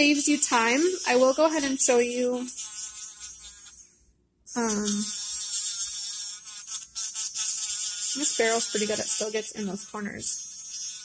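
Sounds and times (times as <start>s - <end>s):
nail drill high-pitched whine: 0.0s - 3.8s, 4.5s - 11.0s.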